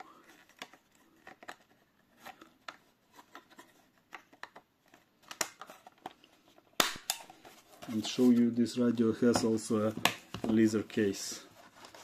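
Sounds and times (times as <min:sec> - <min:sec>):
plastic clicks and scrapes: 0:00.2 - 0:08.0
loud plastic snap: 0:06.8 - 0:07.3.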